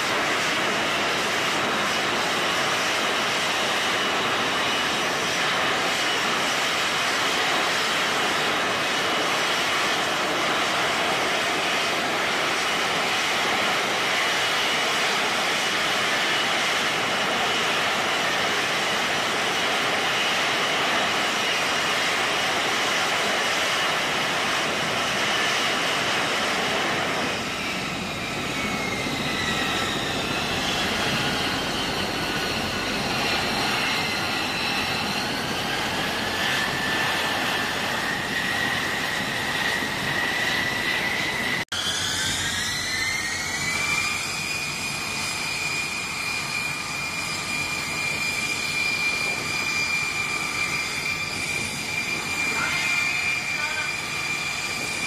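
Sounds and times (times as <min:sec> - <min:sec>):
falling whining tones: 0:00.0 - 0:55.0
loud steady jet engine noise: 0:00.0 - 0:55.0
thin high whine: 0:40.4 - 0:55.0.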